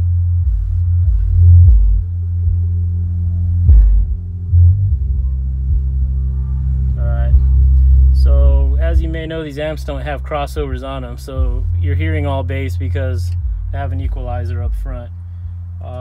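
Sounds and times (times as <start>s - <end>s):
heavy pulsing bass music: 0.0s - 16.0s.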